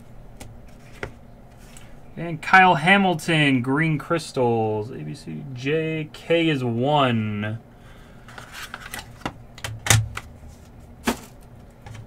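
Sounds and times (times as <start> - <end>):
card packaging clicks and taps: 8.3 - 10.3.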